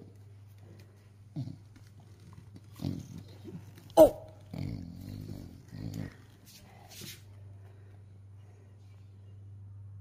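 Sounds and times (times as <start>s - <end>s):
dog play growls: 1.3s - 6.5s.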